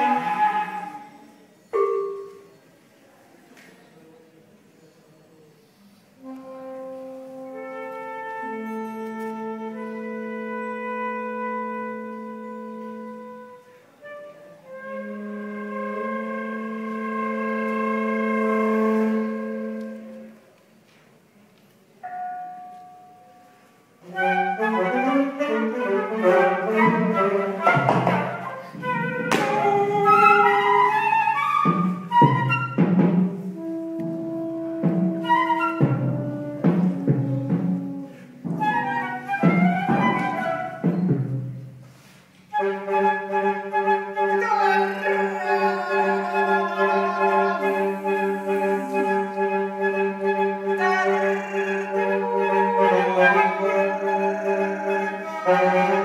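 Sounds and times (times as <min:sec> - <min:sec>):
fast flute and saxophone figures: 0:00.0 - 0:01.4, 0:06.2 - 0:20.4, 0:24.0 - 0:41.1, 0:42.5 - 0:56.0
long wind instrument notes: 0:00.0 - 0:02.2, 0:06.2 - 0:20.6, 0:23.4 - 0:56.0.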